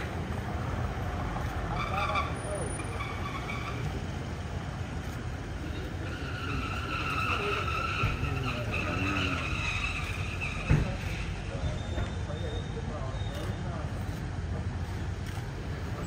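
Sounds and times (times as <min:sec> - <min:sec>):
vehicles rumbling over paving: 0:00.0 - 0:16.0
wheel squeal: 0:01.6 - 0:04.2, 0:05.6 - 0:13.8
sharp thump: 0:10.6 - 0:11.1.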